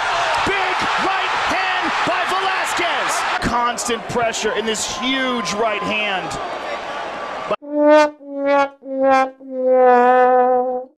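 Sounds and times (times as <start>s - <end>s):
arena broadcast noise: 0.1s - 7.5s
sad trombone sound effect: 7.6s - 10.9s.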